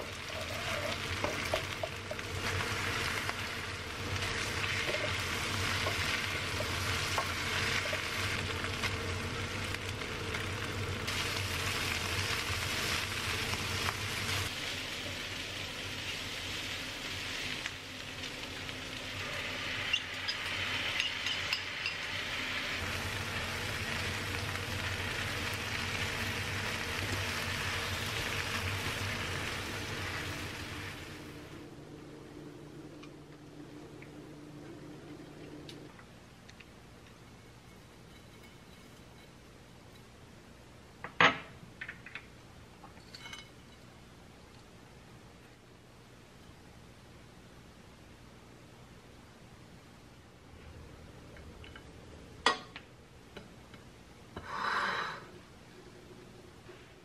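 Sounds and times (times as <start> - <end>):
food sizzling in frying pan: 0.0 - 31.8.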